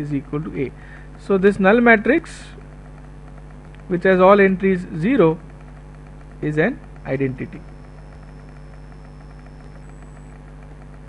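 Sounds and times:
low hum with hiss: 0.0 - 11.0.

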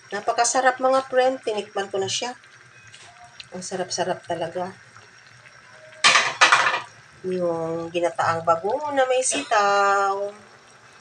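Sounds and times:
utensil scraping pan and shells: 6.0 - 7.0.

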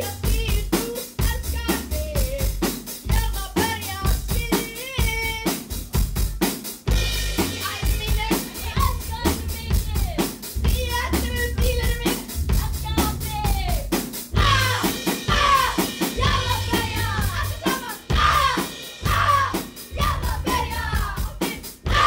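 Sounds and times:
drum kit beat: 0.0 - 22.0
bass guitar: 5.1 - 22.0.

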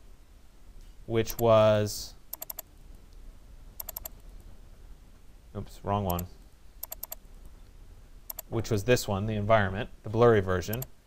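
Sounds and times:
computer mouse double-clicks: 2.3 - 2.7, 3.8 - 4.2, 6.1 - 7.2, 8.3 - 8.5, 10.7 - 10.9.

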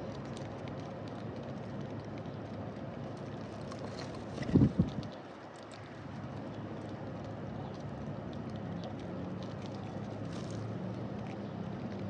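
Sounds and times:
birds pecking at seed: 0.0 - 12.0.

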